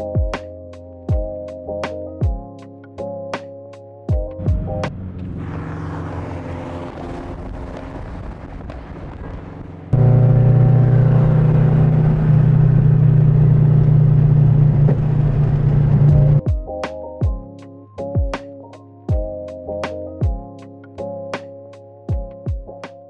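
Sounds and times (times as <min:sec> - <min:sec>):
car engine and road noise: 0:04.4 - 0:16.4
low engine and exhaust drone: 0:04.4 - 0:16.4.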